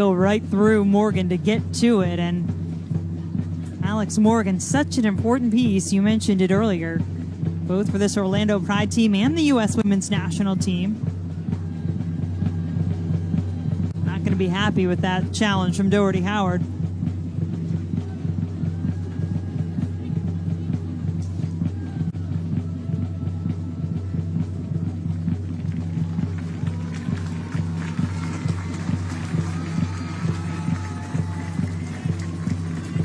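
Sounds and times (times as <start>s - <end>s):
low bass with regular beat: 0.0s - 33.0s.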